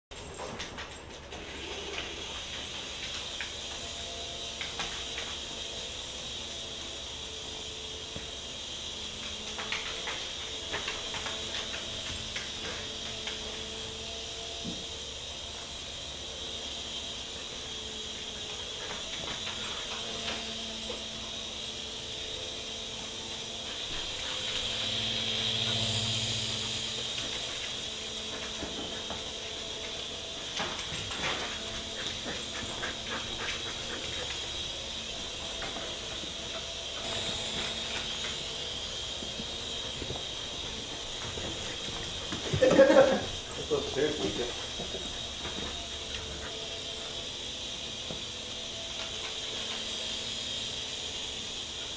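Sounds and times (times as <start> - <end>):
toy helicopter rotor whirring: 0.1 - 51.9.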